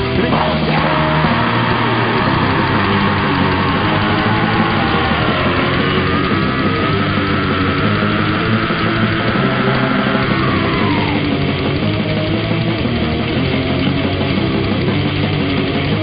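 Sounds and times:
death metal band playing: 0.0s - 16.0s.

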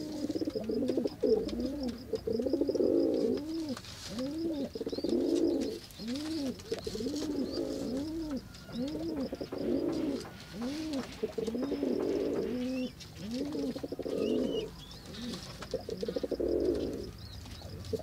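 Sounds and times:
pigeon cooing: 0.0s - 18.0s
small birds chirping: 0.0s - 18.0s.

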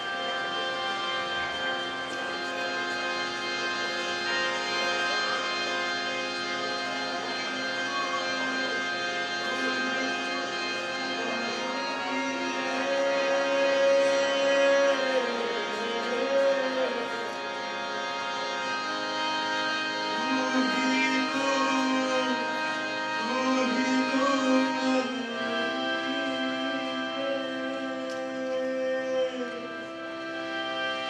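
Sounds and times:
harmonium drone: 0.0s - 31.0s.

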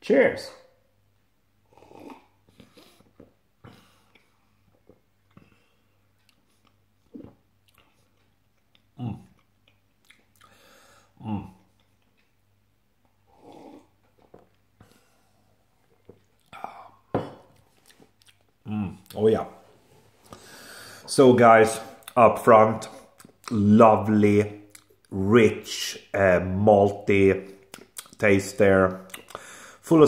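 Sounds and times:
swallowing: 1.7s - 10.6s, 13.3s - 15.1s
breathy nasal exhale: 20.3s - 21.0s
mouth clicks: 27.6s - 28.2s, 29.0s - 29.6s.

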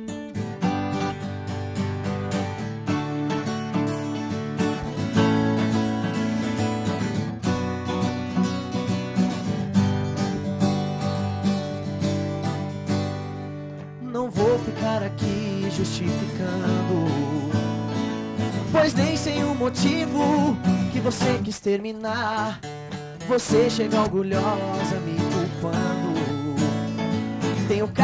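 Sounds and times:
acoustic guitars strumming: 0.0s - 28.0s.

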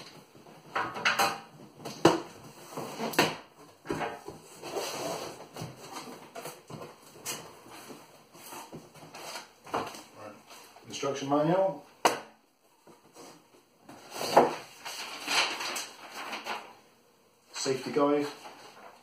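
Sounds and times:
cardboard scrapes and rustles: 4.5s - 6.1s.

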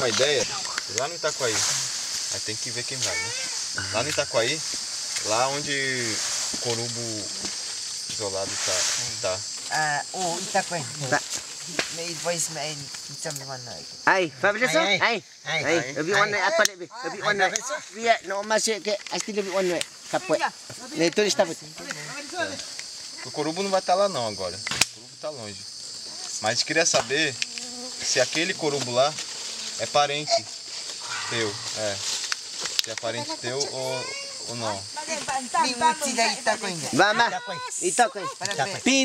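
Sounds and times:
people talking: 0.0s - 4.6s, 32.9s - 39.0s
men talking: 0.0s - 12.9s, 14.0s - 25.7s, 28.0s - 29.2s, 31.0s - 32.2s, 32.8s - 34.9s, 36.4s - 39.0s
insects hissing: 0.0s - 39.0s.

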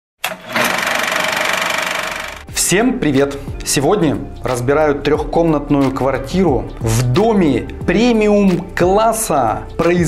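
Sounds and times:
film projector clatter: 0.2s - 2.5s.

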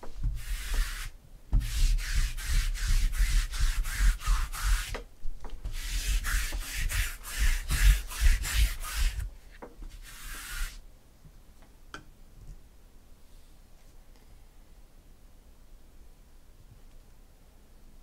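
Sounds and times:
roller rubbing across tabletop: 0.1s - 5.0s, 5.7s - 9.3s, 9.9s - 10.8s.

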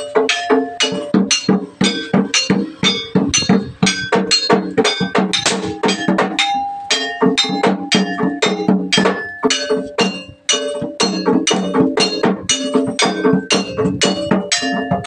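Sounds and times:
drum strokes: 0.0s - 15.0s
gamelan dance music: 0.0s - 15.0s
metal gongs ringing: 0.0s - 15.0s.

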